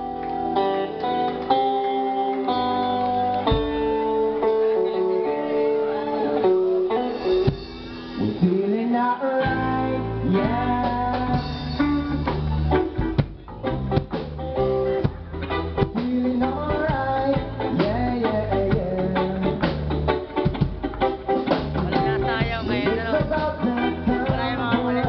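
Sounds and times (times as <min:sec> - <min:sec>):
live reggae band playing: 0:00.0 - 0:25.0
person singing: 0:08.2 - 0:12.7, 0:15.0 - 0:20.1, 0:21.7 - 0:25.0.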